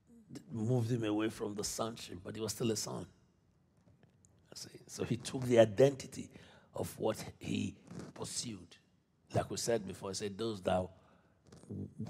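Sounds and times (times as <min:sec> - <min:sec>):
person speaking: 0:04.6 - 0:08.7, 0:11.7 - 0:12.0.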